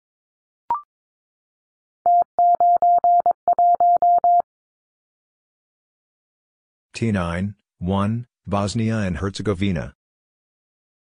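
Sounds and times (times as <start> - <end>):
morse code tone: 2.1 - 4.4.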